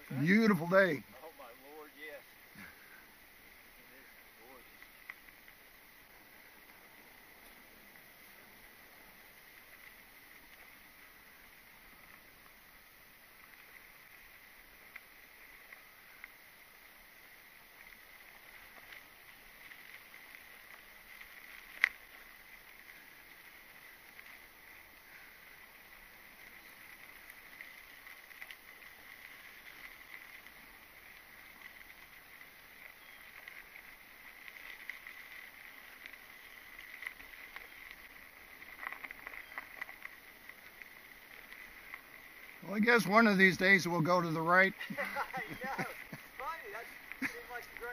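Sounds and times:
bike tyres rolling over gravel: 0:00.0 - 0:47.9.

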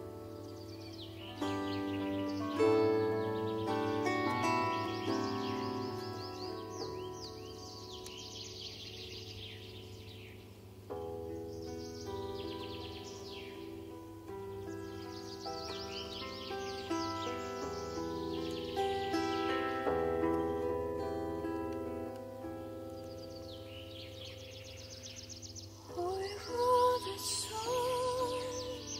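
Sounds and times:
plucked bandura: 0:00.0 - 0:09.4, 0:10.9 - 0:24.7
birds chirping: 0:00.0 - 0:28.9.

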